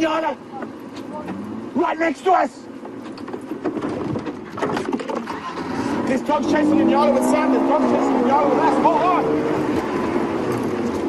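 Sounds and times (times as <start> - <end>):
vehicle engine running: 0.1 - 11.0
vehicle rattling and knocking: 2.7 - 6.7.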